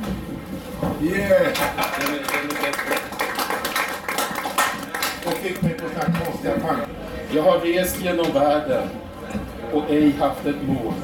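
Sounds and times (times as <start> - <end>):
audience applauding: 1.4 - 6.5.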